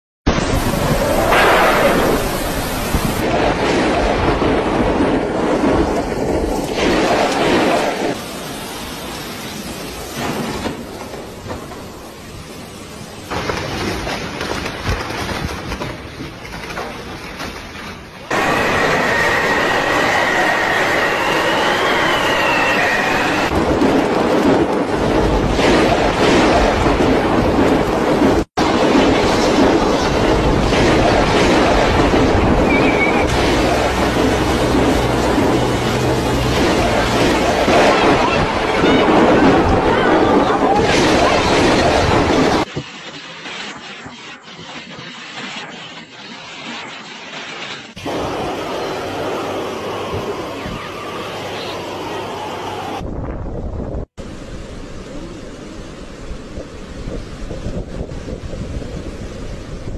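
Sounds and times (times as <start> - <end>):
strong wind blowing: 0.3 - 8.8, 18.3 - 42.9, 47.9 - 59.9
heavy rain pouring: 0.3 - 44.5, 47.0 - 53.2, 54.2 - 59.9
high whistling tone: 18.4 - 23.5, 32.6 - 33.3.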